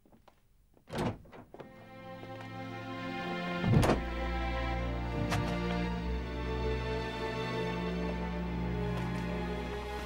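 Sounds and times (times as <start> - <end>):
wooden door thudding shut: 0.8 - 1.7, 3.6 - 4.1
soft music with held notes: 1.6 - 10.0.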